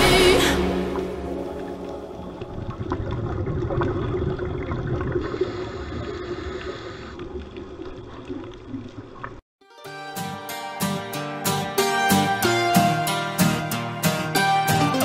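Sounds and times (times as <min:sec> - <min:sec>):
underwater rushing water: 0:00.0 - 0:09.4
faint underwater crackles and clicks: 0:01.4 - 0:09.4.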